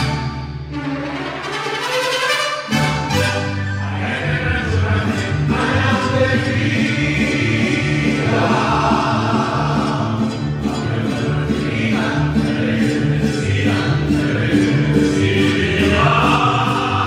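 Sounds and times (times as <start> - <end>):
mariachi band playing: 0.0 - 17.0
men singing together: 3.8 - 17.0.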